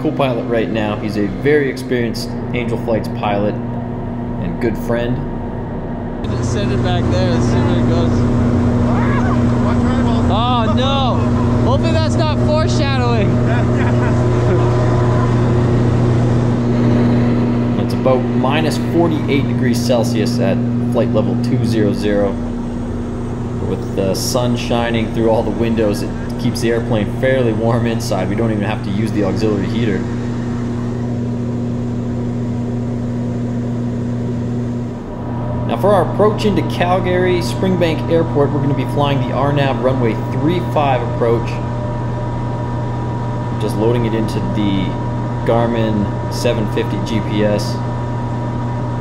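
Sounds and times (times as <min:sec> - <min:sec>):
turboprop engines droning: 0:00.0 - 0:49.0.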